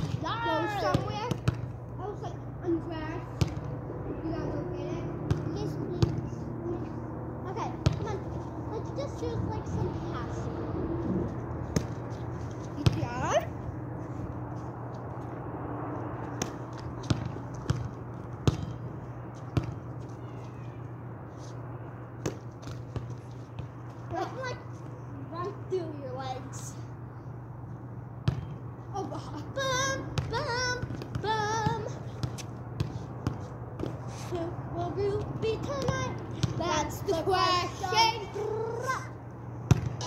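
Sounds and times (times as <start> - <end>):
steady low hum: 0.0 - 40.0
girls calling out: 0.2 - 1.3.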